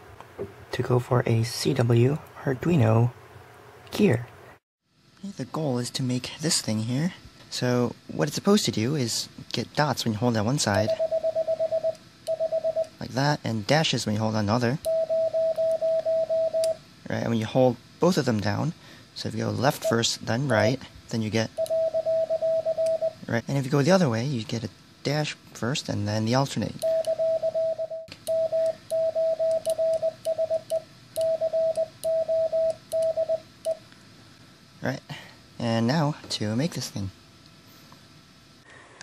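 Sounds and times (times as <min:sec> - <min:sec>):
morse code dashes: 0:10.8 - 0:12.9, 0:14.9 - 0:16.8, 0:21.6 - 0:23.2, 0:26.8 - 0:33.8.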